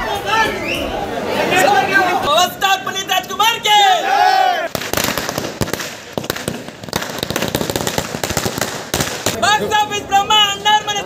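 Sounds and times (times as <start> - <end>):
loud bangs: 4.7 - 9.6
firecrackers cracking: 4.7 - 9.9.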